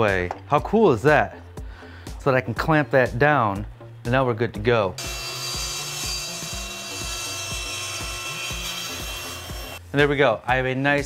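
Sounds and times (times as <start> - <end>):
table saw cutting wood: 5.0 - 9.8.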